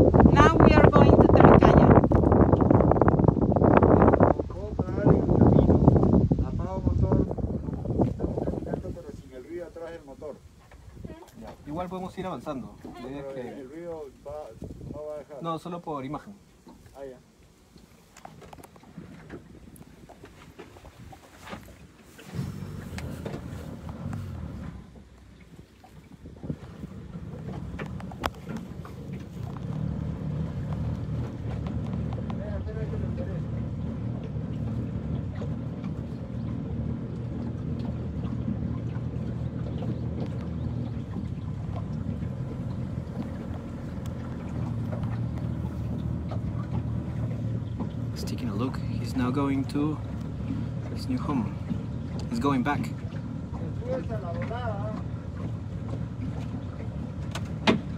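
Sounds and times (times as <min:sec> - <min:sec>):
boat motor droning: 0:00.0 - 0:57.9.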